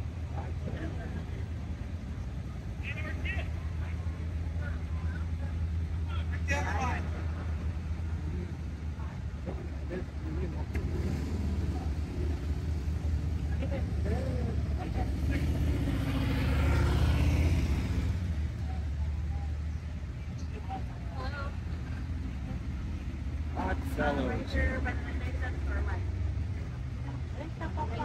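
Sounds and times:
vehicle engines rumbling: 0:00.0 - 0:28.0.

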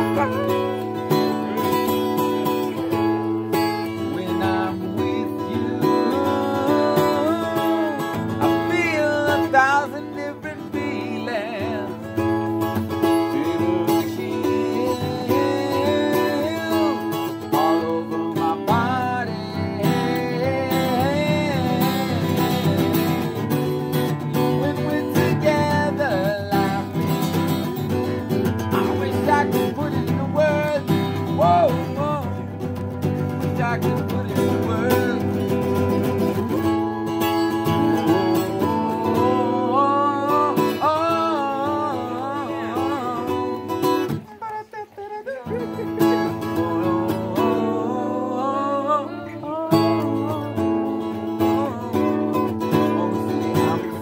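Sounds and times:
acoustic guitar strumming: 0:00.0 - 0:54.0
person singing: 0:00.0 - 0:54.0.

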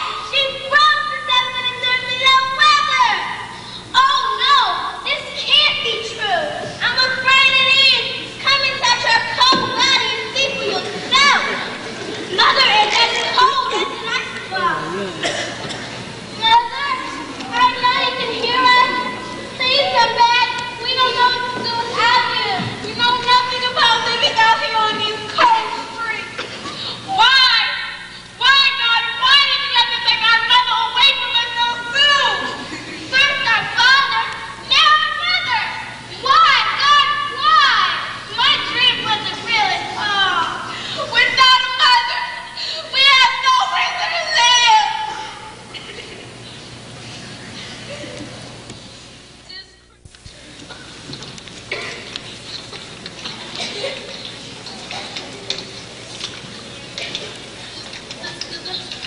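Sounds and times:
children calling out: 0:00.0 - 0:46.4, 0:51.7 - 0:59.0.

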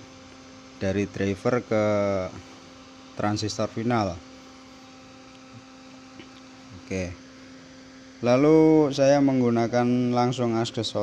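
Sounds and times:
amplifier mains hum: 0:00.0 - 0:11.0.

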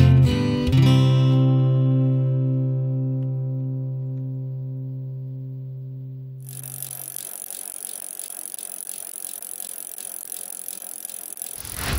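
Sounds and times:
fast even ticking: 0:06.4 - 0:11.9.

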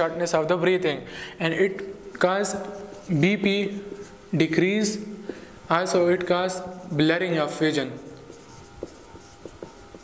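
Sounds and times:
marker scratching on whiteboard: 0:02.4 - 0:04.5, 0:05.8 - 0:10.0.

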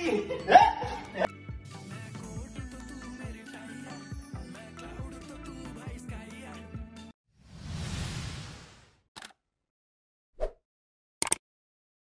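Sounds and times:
whoosh: 0:07.4 - 0:09.0.

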